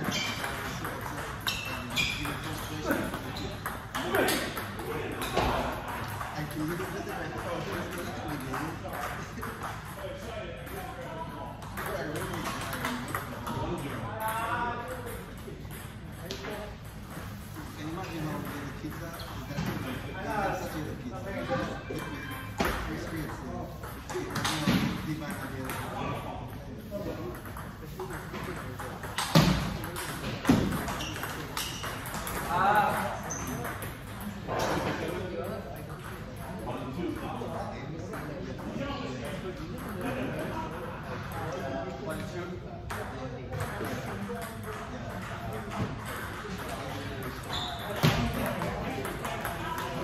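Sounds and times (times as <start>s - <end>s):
ping-pong ball knocking: 0.0s - 10.0s, 27.2s - 34.4s
people talking in a hall: 0.0s - 50.0s.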